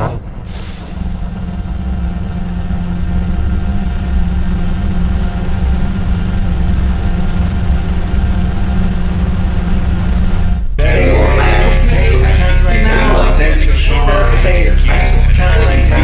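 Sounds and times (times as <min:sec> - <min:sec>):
low electronic drone: 0:00.0 - 0:16.0.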